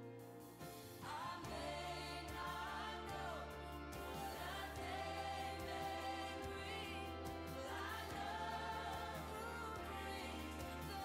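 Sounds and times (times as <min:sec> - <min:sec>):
choir singing gospel song: 0:00.0 - 0:11.0
bass line: 0:01.0 - 0:11.0.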